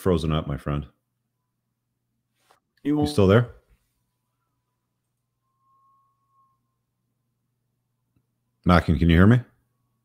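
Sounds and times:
faint steady hum: 0.9 - 10.0
faint thin high tone: 2.9 - 8.0.

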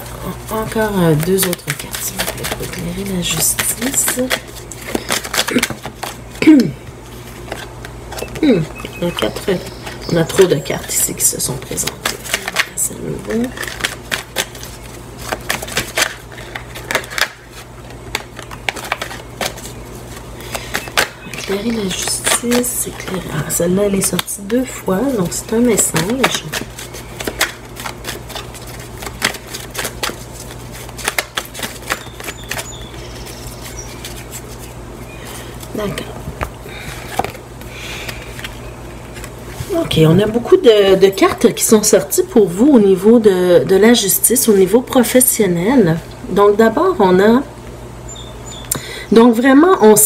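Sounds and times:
faint low hum: 0.0 - 50.0
cards being shuffled: 0.3 - 10.5, 11.1 - 40.5.

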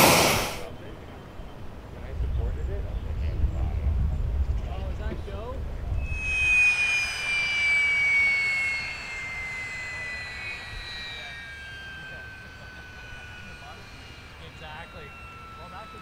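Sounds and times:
aircraft passing overhead: 0.0 - 16.0.

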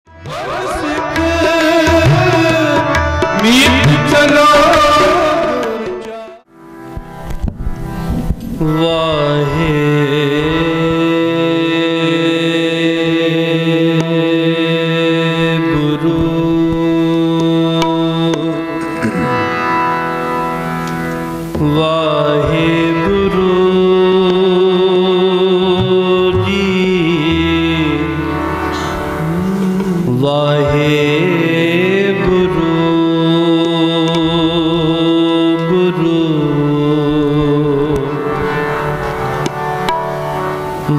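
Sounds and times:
person singing: 0.1 - 6.5, 8.6 - 19.8, 21.6 - 39.7, 40.6 - 40.9
harmonium chord: 0.1 - 40.9
tabla strokes: 0.2 - 8.8, 16.0 - 23.4, 24.1 - 30.2, 37.4 - 40.9.

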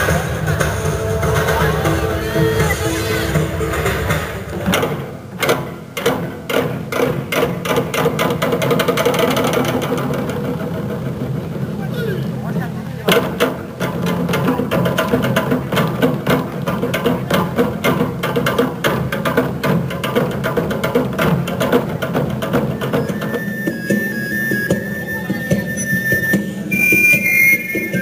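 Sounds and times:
barrel drums striking: 0.0 - 11.7.

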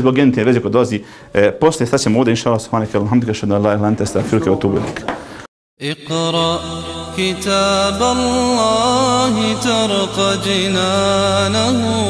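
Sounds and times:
voice chanting long notes: 5.8 - 12.0.

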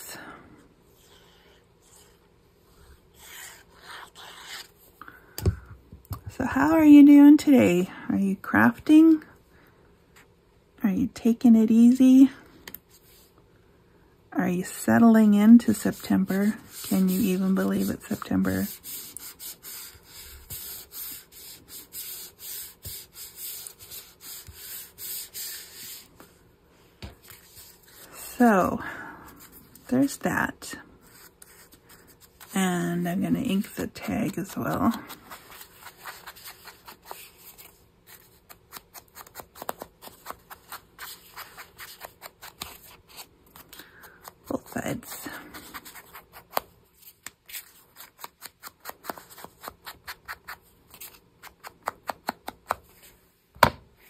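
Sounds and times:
hands rubbing paper: 15.7 - 26.3, 33.5 - 53.1.

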